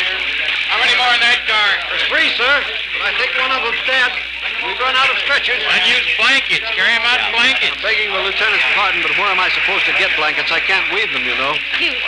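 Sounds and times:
steady hiss of rain: 8.4 - 12.0.

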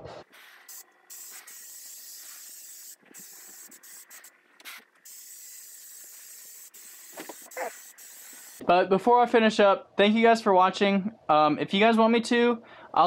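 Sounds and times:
aerosol can spraying: 0.2 - 8.6.

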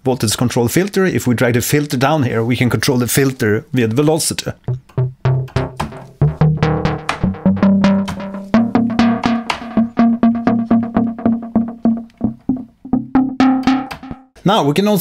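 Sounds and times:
synth bass notes: 4.7 - 14.3.

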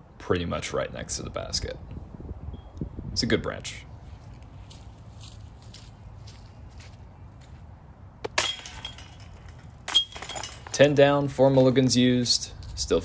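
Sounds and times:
metal chains clattering and jingling: 8.4 - 12.0.

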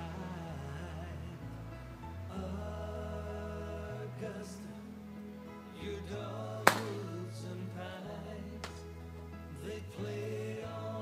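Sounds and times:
background music with singing: 0.0 - 11.0
golf club striking ball: 6.7 - 7.0.

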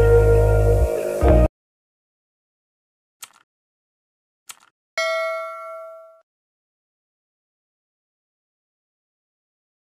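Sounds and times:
bell ding: 5.0 - 6.2.

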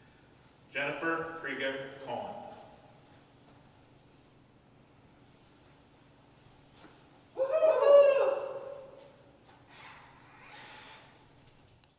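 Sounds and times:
person whooping: 7.4 - 9.1.

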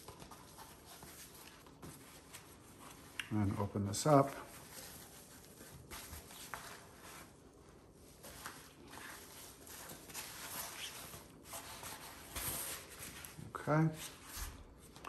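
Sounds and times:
paper drape rustling: 0.0 - 15.0.

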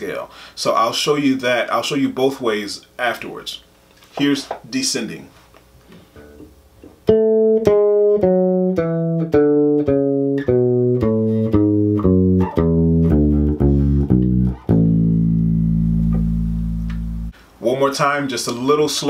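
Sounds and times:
electric bass guitar scale: 6.2 - 17.4.

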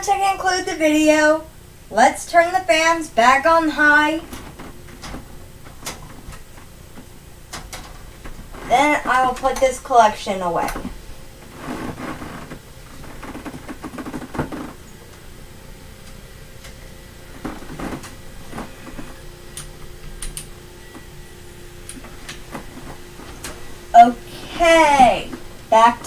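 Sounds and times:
faint steady hum: 0.0 - 26.0
rustling knocks and clicks: 4.2 - 15.3, 16.0 - 21.1.

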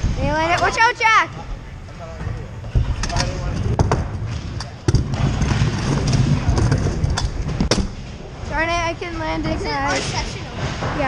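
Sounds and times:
scooter wheels rumbling: 1.6 - 11.0.

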